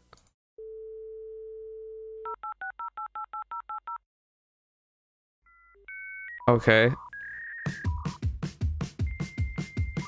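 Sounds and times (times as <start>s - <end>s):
telephone dial tone: 0.6s - 4.0s.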